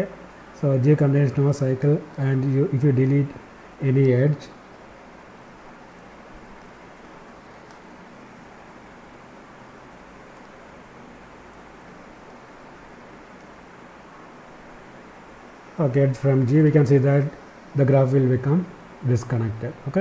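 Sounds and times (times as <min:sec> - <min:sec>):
background hiss: 0:00.0 - 0:20.0
faint low hum: 0:00.0 - 0:20.0.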